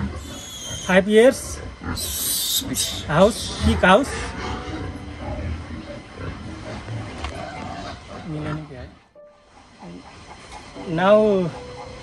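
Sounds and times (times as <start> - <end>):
pigs grunting and squealing: 0.0 - 12.0.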